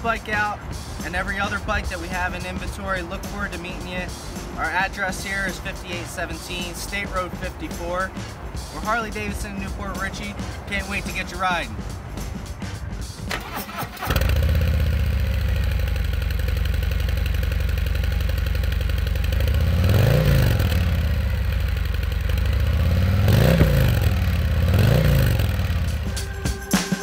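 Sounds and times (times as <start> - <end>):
motorcycle engine starting: 13.0 - 26.4
motorcycle engine revving: 13.2 - 26.4
motorcycle engine idling: 13.4 - 26.4.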